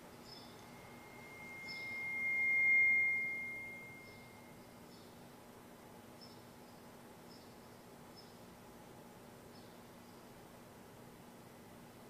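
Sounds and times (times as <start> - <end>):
high pure tone: 0.0 - 4.6.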